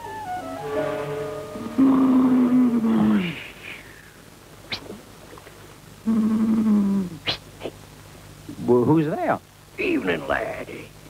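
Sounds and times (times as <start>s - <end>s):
cartoon snoring: 1.8s - 3.4s.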